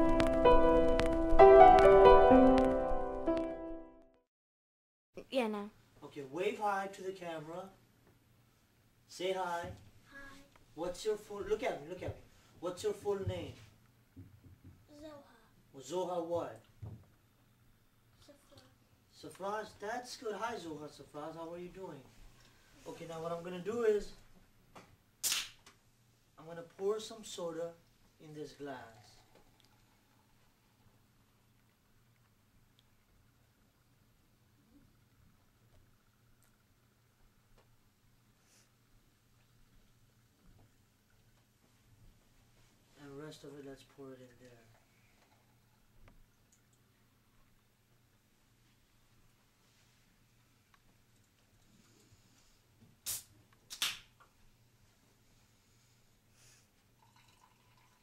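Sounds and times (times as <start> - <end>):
soda can hissing open: 53.0 - 53.9.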